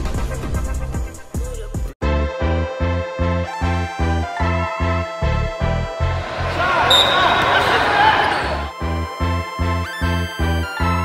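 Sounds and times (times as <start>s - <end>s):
indistinct voices: 6.1s - 8.8s.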